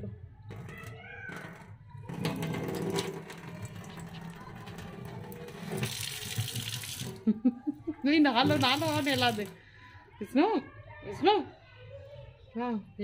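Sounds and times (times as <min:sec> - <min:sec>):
water running into a steel sink: 0:02.0 - 0:07.4, 0:08.3 - 0:09.6.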